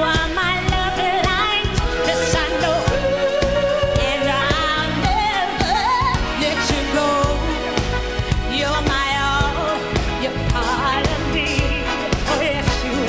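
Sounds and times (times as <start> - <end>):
live band playing chords: 0.0 - 13.0
woman singing soul: 0.0 - 13.0.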